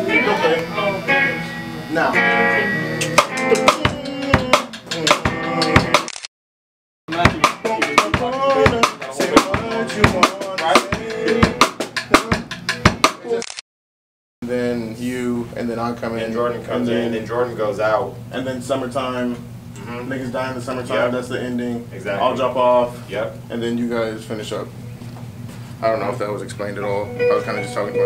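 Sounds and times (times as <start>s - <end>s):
band music: 0.0s - 6.1s, 7.1s - 13.4s, 27.1s - 28.0s
drum kit sharp hits: 3.0s - 6.1s, 7.1s - 13.4s.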